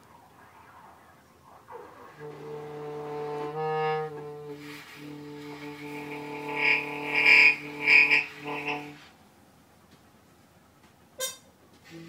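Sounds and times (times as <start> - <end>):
loud high swells: 0.0 - 9.0
held low note with overtones: 0.0 - 9.1.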